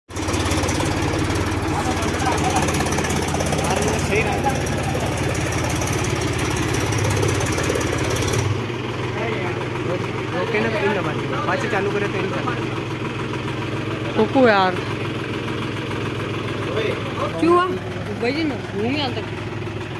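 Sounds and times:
tractor diesel engine running: 0:00.1 - 0:19.9.

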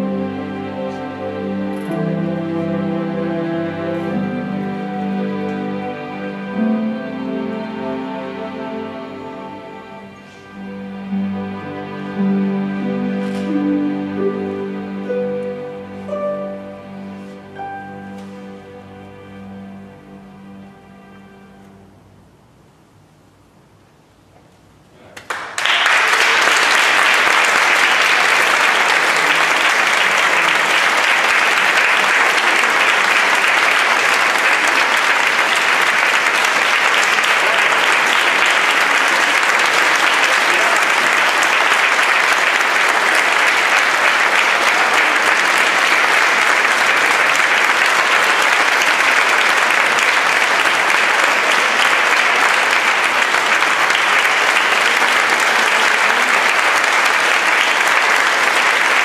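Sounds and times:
audience applauding: 0:25.2 - 0:59.0.

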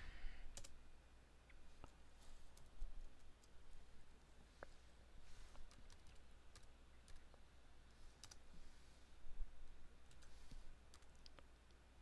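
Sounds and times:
low steady hum: 0:00.0 - 0:12.0
faint keyboard clicks: 0:00.5 - 0:00.8, 0:05.5 - 0:07.4, 0:08.2 - 0:08.4, 0:10.0 - 0:11.8.

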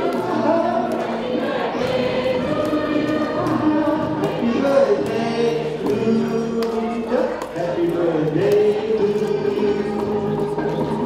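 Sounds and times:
group singing birthday song: 0:00.0 - 0:11.0
hand clapping: 0:00.0 - 0:11.0.

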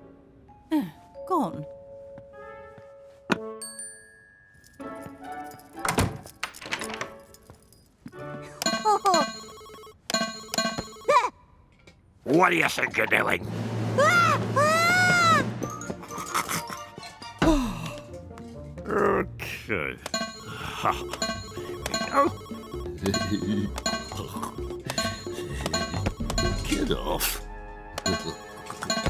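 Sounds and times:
clicking ringtone-like figure: 0:08.6 - 0:11.2, 0:20.0 - 0:26.8, 0:28.0 - 0:29.0
electronic beeps and bleeps: 0:20.1 - 0:27.0, 0:28.0 - 0:29.0
steady lower beep: 0:20.2 - 0:26.9.

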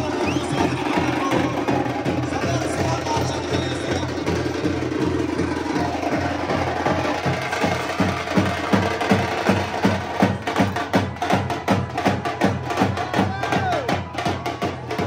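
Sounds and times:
street drum band playing: 0:00.0 - 0:15.0.

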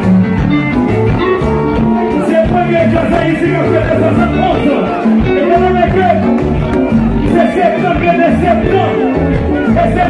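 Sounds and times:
band playing dance music: 0:00.0 - 0:10.0
bass line: 0:00.0 - 0:10.0
guitar: 0:00.0 - 0:10.0.

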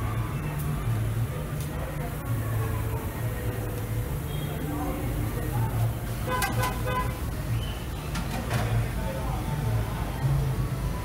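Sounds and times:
vehicle horn tooting: 0:06.3 - 0:07.2.

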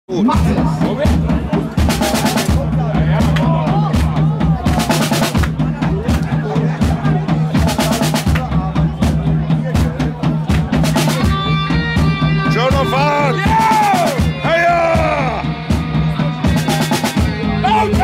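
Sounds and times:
bass line: 0:00.1 - 0:18.0
drum kit: 0:00.1 - 0:18.0
guitar: 0:08.3 - 0:18.0.

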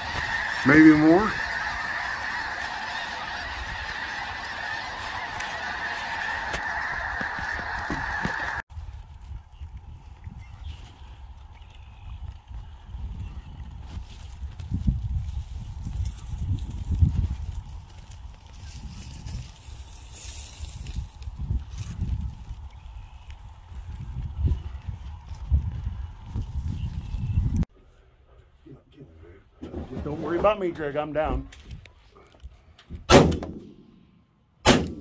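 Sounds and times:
distant geese calling: 0:00.0 - 0:08.6
wind buffeting microphone: 0:06.7 - 0:27.7.

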